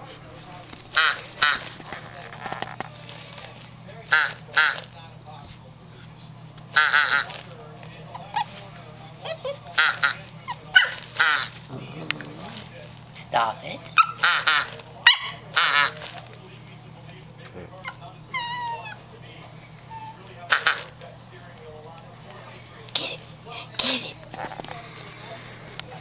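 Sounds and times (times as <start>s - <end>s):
puppy barking: 9.3s - 12.6s, 13.9s - 16.0s.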